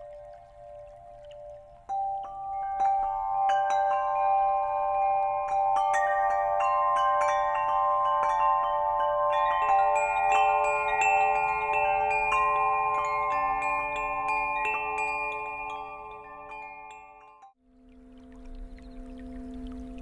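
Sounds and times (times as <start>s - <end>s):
wind bells ringing: 0.0s - 17.6s.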